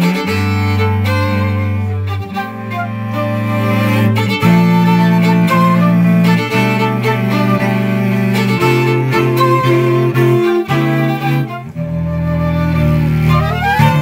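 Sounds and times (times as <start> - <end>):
string quartet playing: 0.0 - 14.0.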